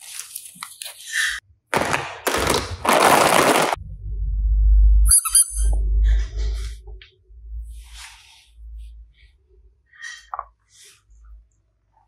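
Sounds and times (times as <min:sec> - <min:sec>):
short high squeaks: 0:05.1 - 0:05.8.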